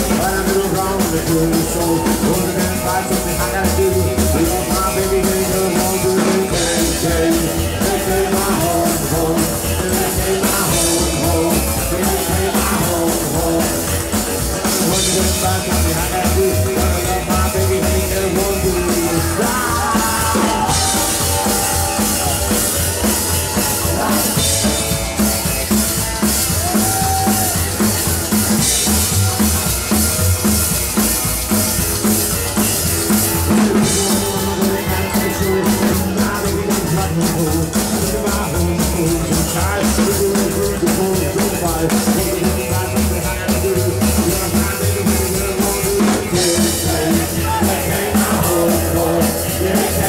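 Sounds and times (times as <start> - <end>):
driving drum kit beat: 0.0 - 50.0
live rock and roll band: 0.0 - 50.0.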